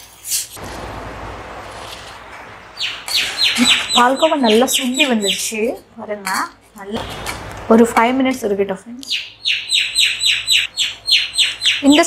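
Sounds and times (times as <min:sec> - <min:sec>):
bird chirping: 0:02.7 - 0:05.7, 0:07.0 - 0:07.4, 0:09.0 - 0:12.0.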